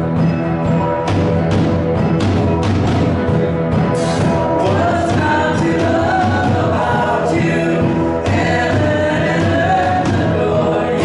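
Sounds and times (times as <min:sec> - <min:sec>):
instrumental accompaniment: 0:00.0 - 0:11.0
group singing worship song: 0:04.1 - 0:11.0.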